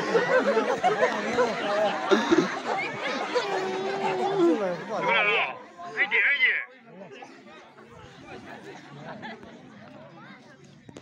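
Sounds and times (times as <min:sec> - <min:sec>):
crowd chattering: 0:00.0 - 0:11.0.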